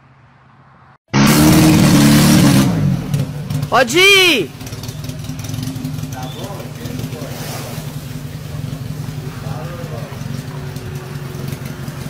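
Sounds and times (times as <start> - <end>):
truck engine droning: 1.1 - 12.0
faint voices calling out: 3.7 - 4.5.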